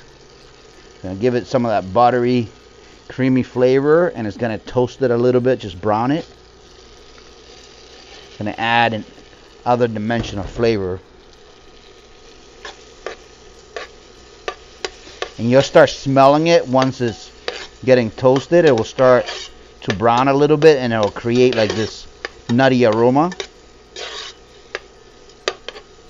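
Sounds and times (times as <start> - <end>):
metal spoon stirring in pot: 16.4 - 26.0.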